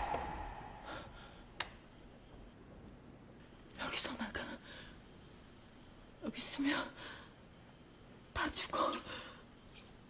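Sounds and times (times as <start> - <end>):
dramatic sound effect hit: 0.0 - 1.3
woman breathing: 0.0 - 1.5.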